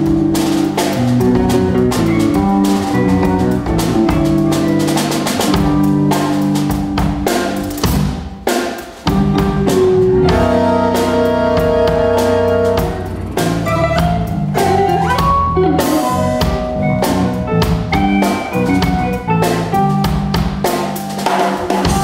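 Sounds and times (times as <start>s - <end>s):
live band playing: 0.0s - 22.0s
snare and cymbal hits: 0.0s - 22.0s.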